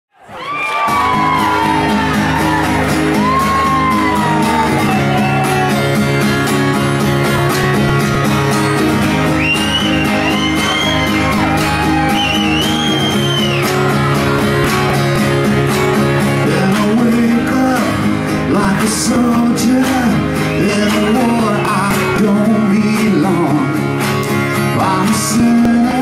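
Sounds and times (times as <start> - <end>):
drums: 0.8 - 26.0
electric guitar: 0.8 - 26.0
strummed acoustic guitar: 0.9 - 26.0
high sliding lead guitar notes: 1.0 - 24.8.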